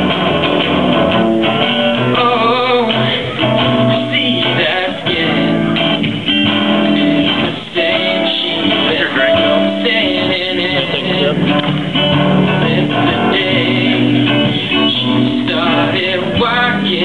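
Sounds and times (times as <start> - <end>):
acoustic guitar strumming: 0.0 - 17.0
person singing: 1.5 - 6.0, 6.7 - 17.0.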